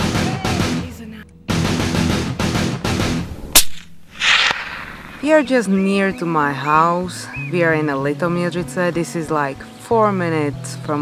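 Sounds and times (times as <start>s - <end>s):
rock music: 0.0s - 3.6s
sharp gunshot crack: 3.5s - 5.5s
short hiss: 3.6s - 5.4s.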